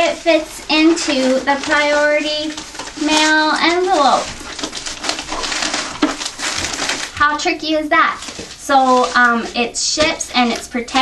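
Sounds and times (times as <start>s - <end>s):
padded envelope crinkling: 0.0s - 11.0s.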